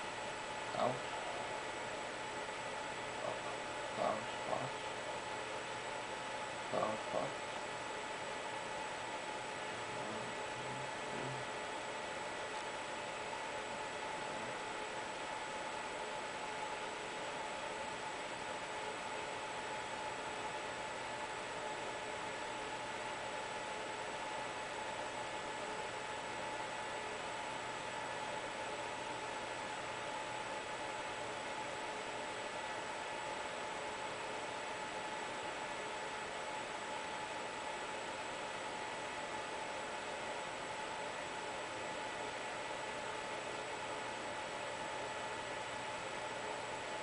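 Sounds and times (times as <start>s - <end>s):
steady hiss: 0.0s - 5.9s, 9.4s - 15.6s
faint constant tones: 0.0s - 47.0s.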